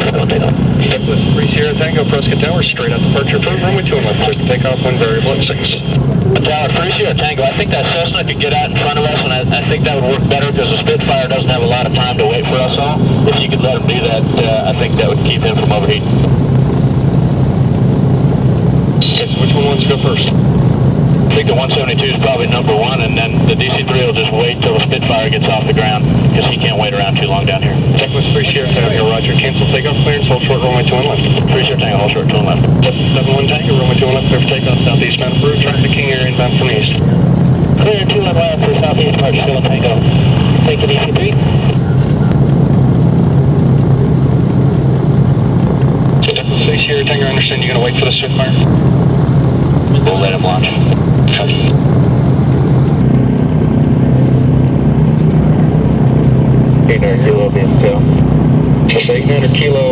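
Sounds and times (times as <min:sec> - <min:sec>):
propeller engines droning: 0:00.0 - 0:59.9.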